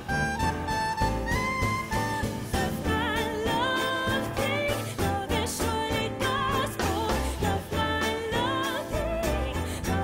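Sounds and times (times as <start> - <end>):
lead melody with vibrato: 0.0 - 4.7
live jazz ensemble: 0.0 - 10.0.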